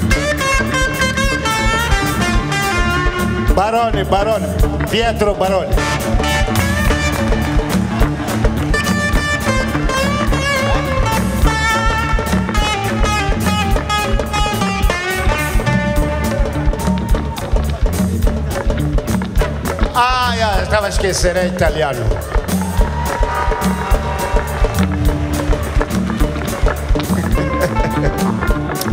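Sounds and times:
drum kit beat: 0.0s - 28.9s.

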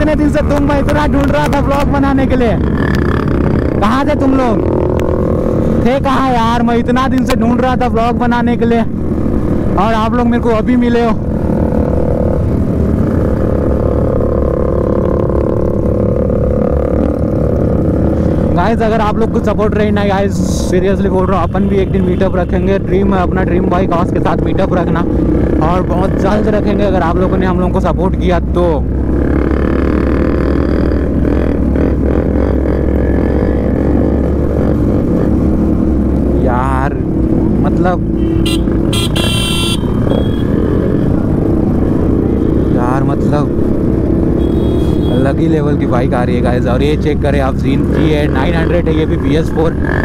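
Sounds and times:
motorcycle engine running: 0.0s - 50.0s
other motorcycles: 0.0s - 50.0s
wind and road noise: 0.0s - 50.0s.

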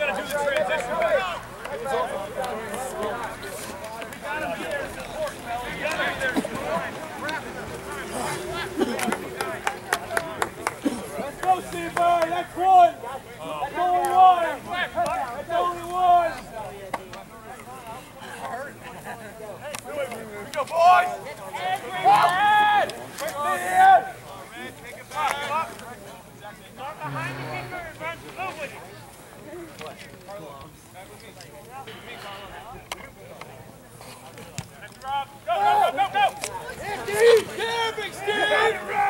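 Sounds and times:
faint shouting voices: 0.0s - 29.9s, 31.6s - 39.0s
quick hand claps: 8.9s - 12.3s.

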